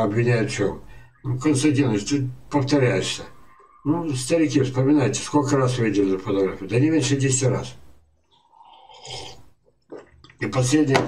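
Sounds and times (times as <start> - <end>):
man sipping from mug: 8.3 - 10.3.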